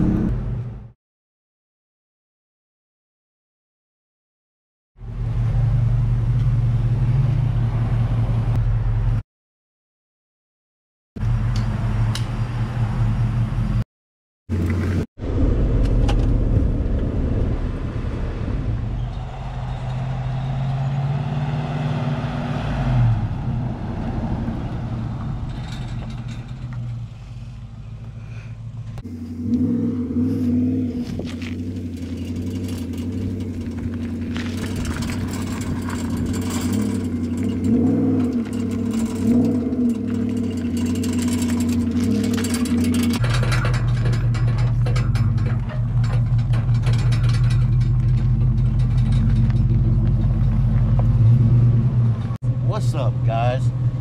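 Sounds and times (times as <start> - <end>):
pickup truck engine running: 38.2 - 54.0.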